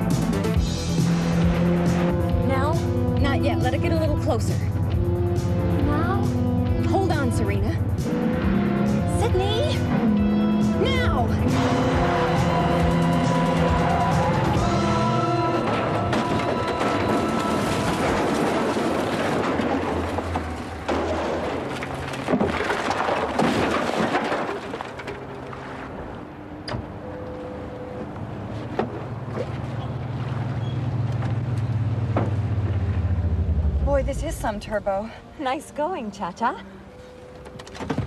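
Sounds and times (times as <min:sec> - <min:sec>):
dramatic music: 0:00.0 - 0:22.2, 0:32.5 - 0:37.8
car engine: 0:00.0 - 0:35.4
car crashing into wooden crates: 0:15.2 - 0:25.5.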